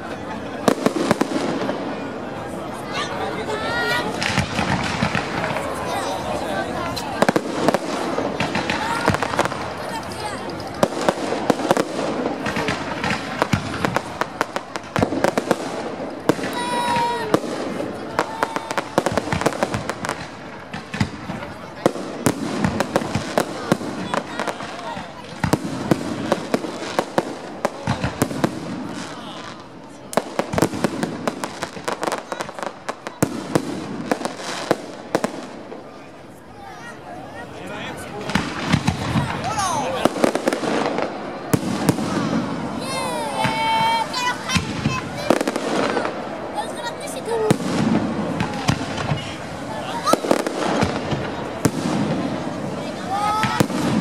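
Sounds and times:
fireworks bangs and crackles: 0.0 - 54.0.

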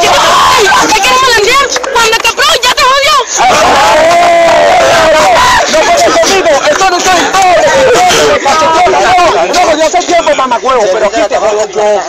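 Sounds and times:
crowd of spectators yelling: 0.0 - 11.9.

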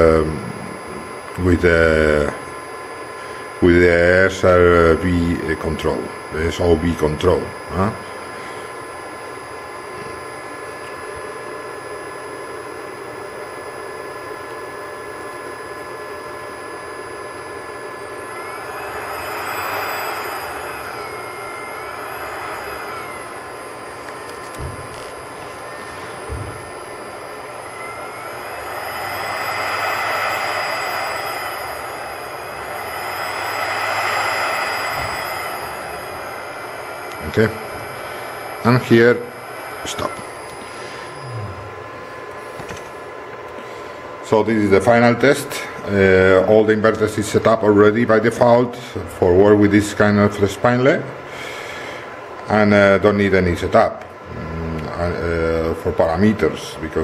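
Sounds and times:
milling spindle whining: 15.1 - 43.0.

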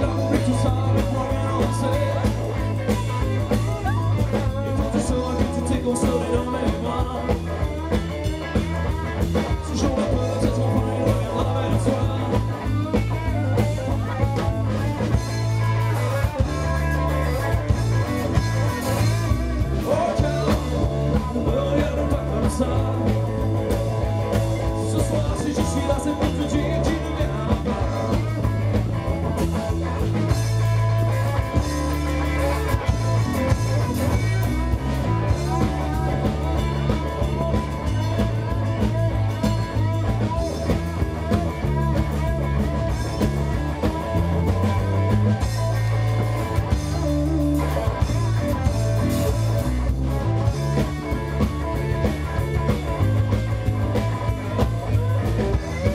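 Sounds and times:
electric guitar: 0.0 - 55.9
live rock blues band: 0.0 - 55.9
steady bass line: 0.0 - 55.9.

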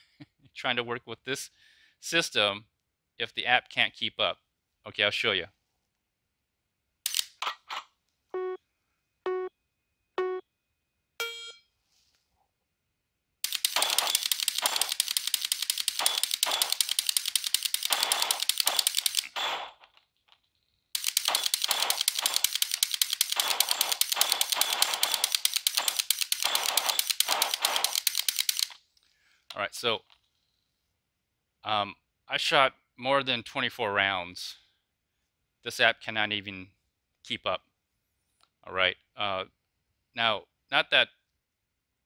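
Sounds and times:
rifle trigger clicking: 21.0 - 28.8.

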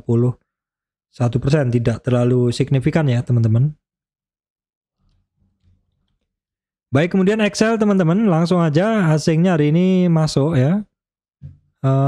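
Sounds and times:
man speaking: 7.0 - 10.9.

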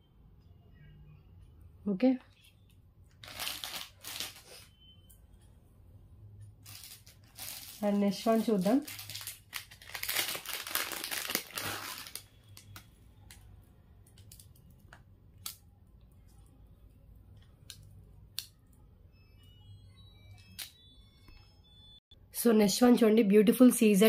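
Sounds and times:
plastic packaging crinkling: 3.1 - 4.7, 6.6 - 12.9.

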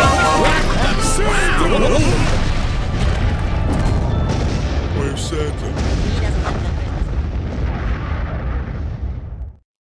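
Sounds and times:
deep explosion-like rumble: 2.0 - 9.6.

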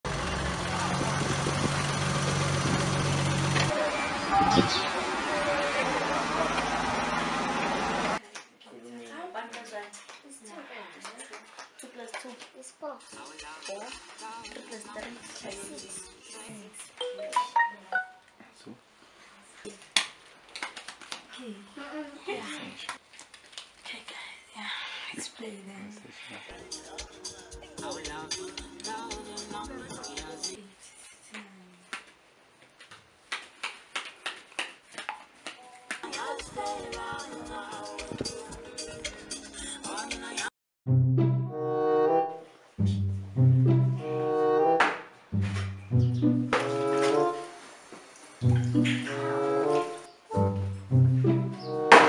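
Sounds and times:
outdoor noise: 0.0 - 13.2
car engine idling: 0.1 - 3.7
mobile phone electronic tones: 17.0 - 18.2.

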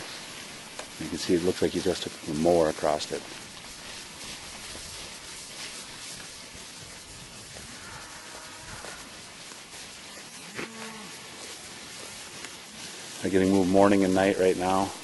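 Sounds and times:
steady hiss: 0.0 - 15.0
cattle mooing: 10.5 - 11.4.

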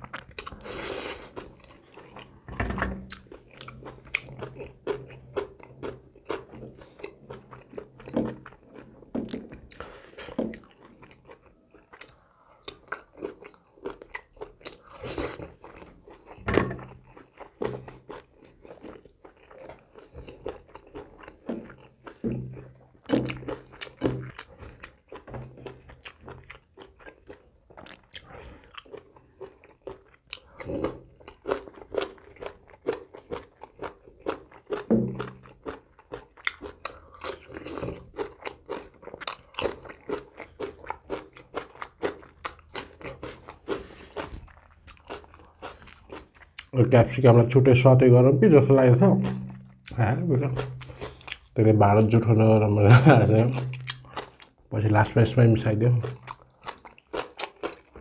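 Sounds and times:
chewing with wet mouth smacks: 0.0 - 46.8, 49.2 - 51.6, 53.4 - 54.7, 56.0 - 58.0.

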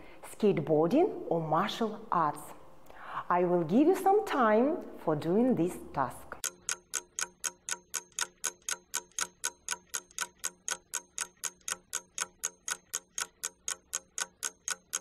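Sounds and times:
clock ticking: 6.4 - 15.0.

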